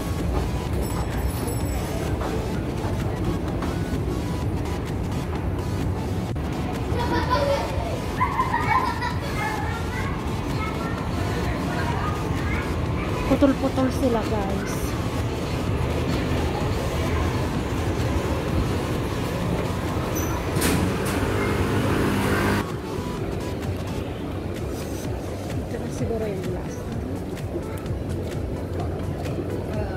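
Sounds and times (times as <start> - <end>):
city street traffic: 0.0 - 29.9
people chattering: 0.0 - 29.9
children's voices: 6.8 - 18.0
vehicle engine running loudly: 9.3 - 26.0.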